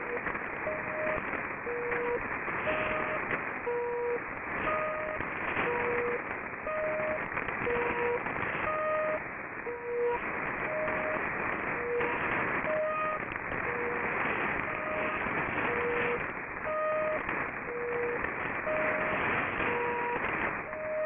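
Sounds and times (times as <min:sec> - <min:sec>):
alternating short radio tones: 0:00.0 - 0:21.0
radio static hiss: 0:00.0 - 0:21.0.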